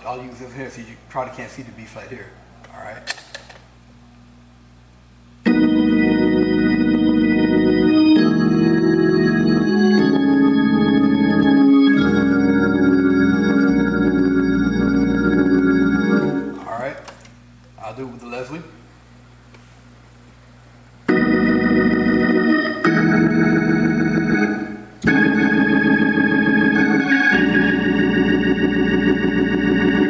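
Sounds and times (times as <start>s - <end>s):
organ playing sustained chords: 5.4s - 17.0s, 21.0s - 30.0s
organ pedal bass: 5.4s - 17.2s, 21.0s - 30.0s.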